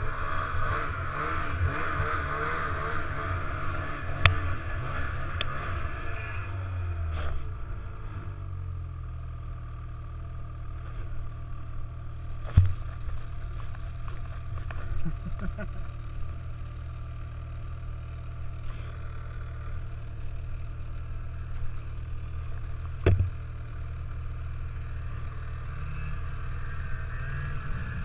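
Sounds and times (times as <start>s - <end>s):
snowmobile engine running: 0.0s - 28.0s
sharp thump: 23.0s - 23.3s.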